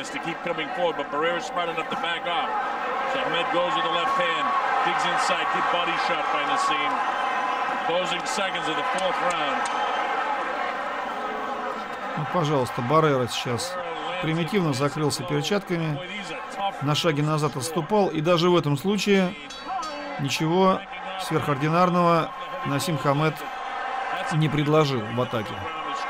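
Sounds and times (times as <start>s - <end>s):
crowd shouting: 0.0s - 26.0s.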